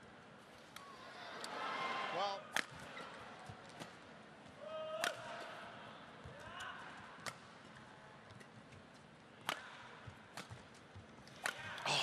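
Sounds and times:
racket hitting shuttlecock: 0:09.4 - 0:10.7, 0:11.3 - 0:11.8.

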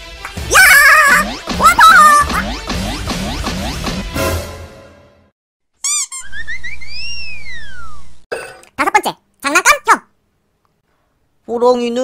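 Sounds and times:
whistle-like tone rising and falling: 0:05.9 - 0:08.2.

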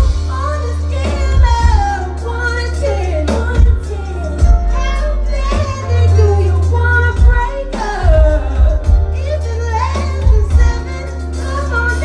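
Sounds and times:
deep bass: 0:00.0 - 0:12.0
drums: 0:00.0 - 0:12.0
keyboards: 0:00.0 - 0:12.0
woman singing into a microphone: 0:00.0 - 0:12.0.

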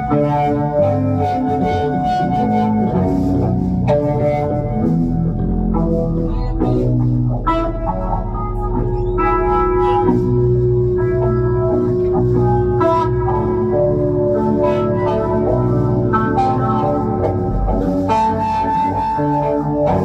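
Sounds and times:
electric guitar ringing notes: 0:00.0 - 0:20.0.

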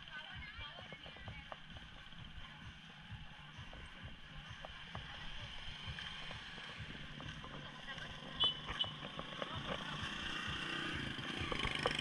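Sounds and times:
faint voices of people: 0:00.0 - 0:12.0
traffic rumble: 0:00.0 - 0:12.0.

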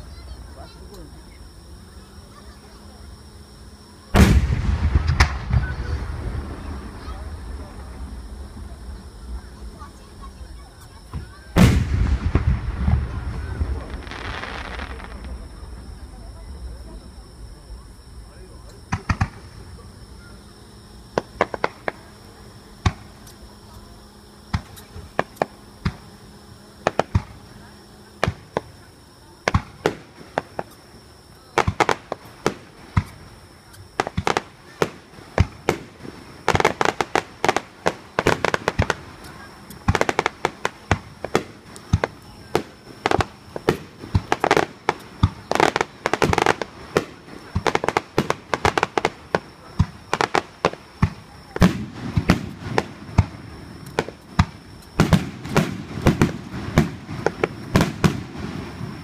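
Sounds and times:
fireworks bangs: 0:00.0 - 0:23.6, 0:24.3 - 0:59.0
deep heavy firework bursts: 0:00.0 - 0:59.0.

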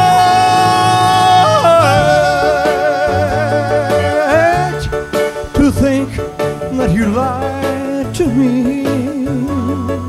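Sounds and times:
band backing: 0:00.0 - 0:10.0
person singing with vibrato: 0:00.0 - 0:10.0.

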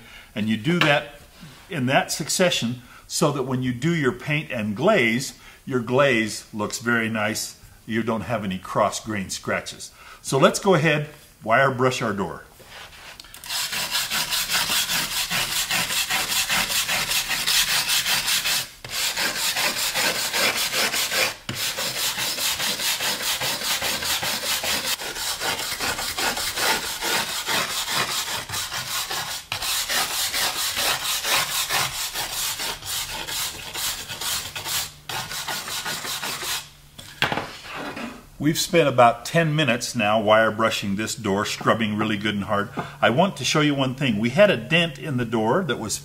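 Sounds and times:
wire brush scrubbing wood: 0:12.9 - 0:36.6.

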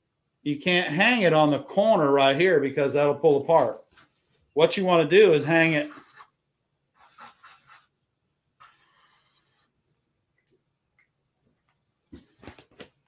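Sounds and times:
marker scratching on paper: 0:05.8 - 0:06.4, 0:07.0 - 0:08.0, 0:08.6 - 0:09.7.

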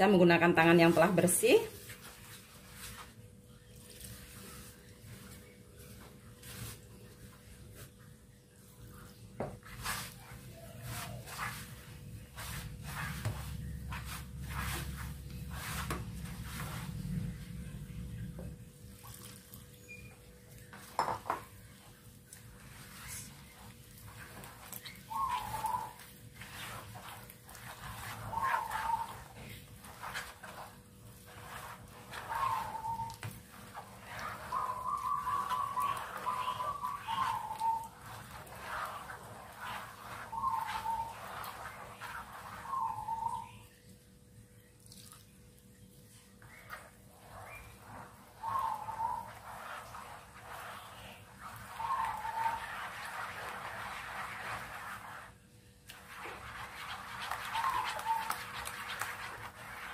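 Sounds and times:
hand kneading batter in bowl: 0:00.0 - 0:59.9.

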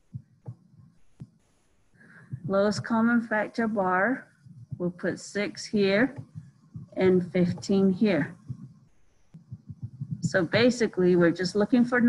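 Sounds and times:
soft taps on a screen: 0:06.1 - 0:10.4.

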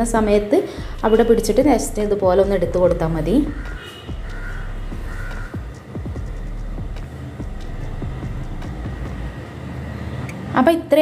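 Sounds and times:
steady low rumble: 0:00.0 - 0:09.9.

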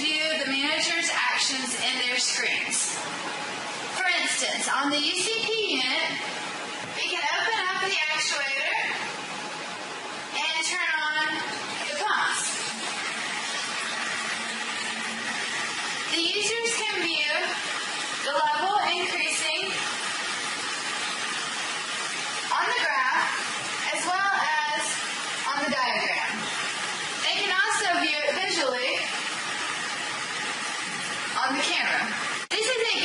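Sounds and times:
electric water pump hum: 0:00.0 - 0:33.0
room noise hiss: 0:00.0 - 0:33.0
water rushing through pipes: 0:00.0 - 0:33.0.

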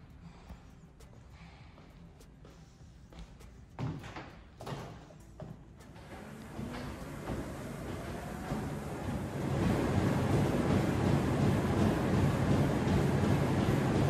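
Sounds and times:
footfalls on treadmill belt: 0:03.3 - 0:14.0
treadmill motor whine: 0:05.9 - 0:14.0.

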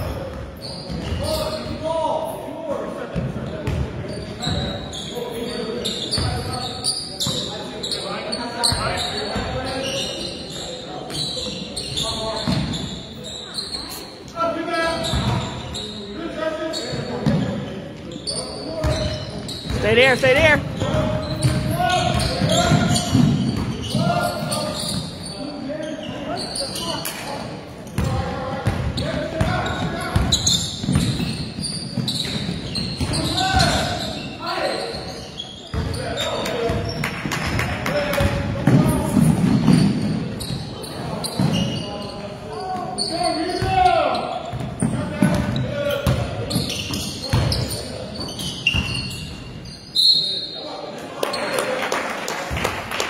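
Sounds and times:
basketball bouncing on gym floor: 0:18.8 - 0:24.5, 0:28.0 - 0:33.9, 0:44.5 - 0:47.7.

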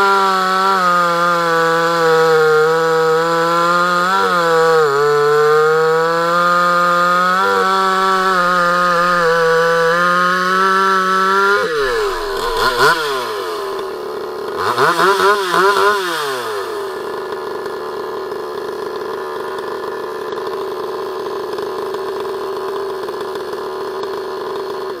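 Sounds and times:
chainsaw throttle blips and idle: 0:00.0 - 0:25.0.

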